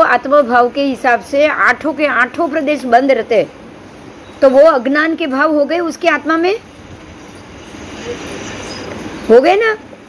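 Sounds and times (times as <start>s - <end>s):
steady rushing noise: 0.9s - 10.0s.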